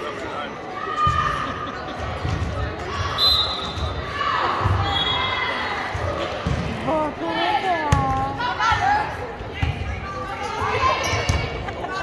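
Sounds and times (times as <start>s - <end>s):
players' voices in hall: 0.0s - 12.0s
sneakers squeaking: 2.2s - 6.6s, 9.6s - 11.6s.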